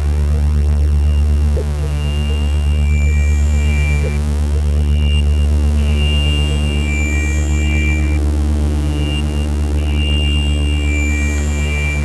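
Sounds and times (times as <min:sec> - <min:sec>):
electronic drone music: 0:00.0 - 0:12.0.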